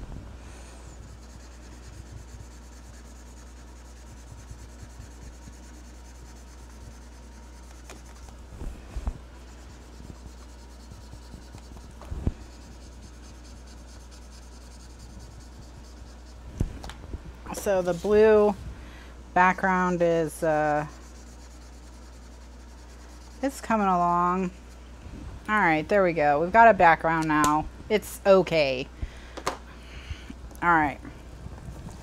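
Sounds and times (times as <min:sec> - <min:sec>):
steady low hum: 0:00.0 - 0:32.0
marker scratching on paper: 0:00.7 - 0:08.4, 0:09.4 - 0:16.4, 0:17.5 - 0:18.6, 0:19.8 - 0:24.0.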